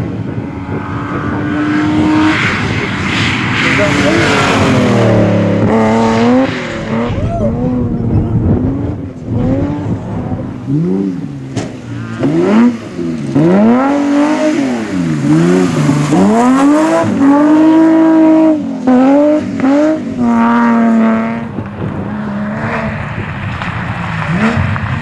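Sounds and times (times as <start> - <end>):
rally car engines revving: 0.0 - 25.0.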